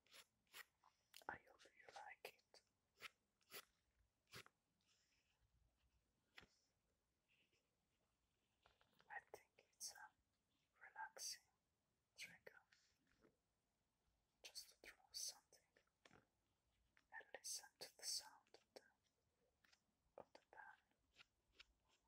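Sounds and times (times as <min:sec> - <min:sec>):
man whispering: 0:01.2 - 0:02.6, 0:09.1 - 0:10.2, 0:10.8 - 0:11.5, 0:12.2 - 0:12.7, 0:14.4 - 0:15.7, 0:17.1 - 0:18.9, 0:20.2 - 0:20.8.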